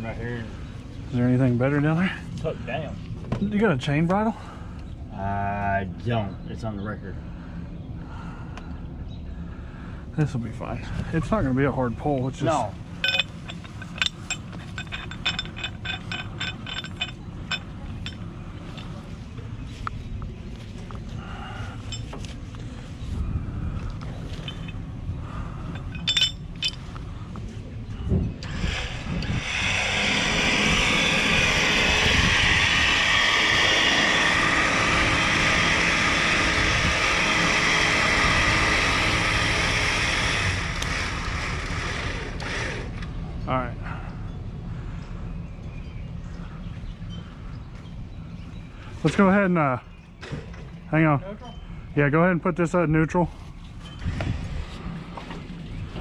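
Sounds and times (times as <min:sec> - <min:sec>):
metal shackle clinking and scraping: 0:12.2 - 0:20.0, 0:21.7 - 0:22.8, 0:23.8 - 0:27.2, 0:53.4 - 0:56.0
loud steady rushing noise: 0:28.4 - 0:42.7.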